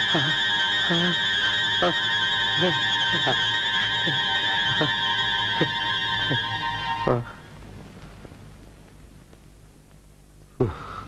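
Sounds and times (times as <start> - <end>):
falling-pitch electronic sweeps: 0.0 - 7.5
steady high electronic tone: 0.0 - 7.6.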